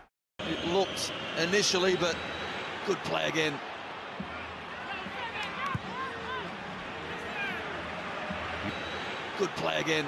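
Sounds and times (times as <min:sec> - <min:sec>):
stadium crowd noise: 0:00.4 - 0:10.0.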